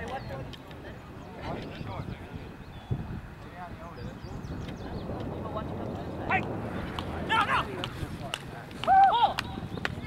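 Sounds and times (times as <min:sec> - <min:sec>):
players shouting: 0:07.2 - 0:08.0.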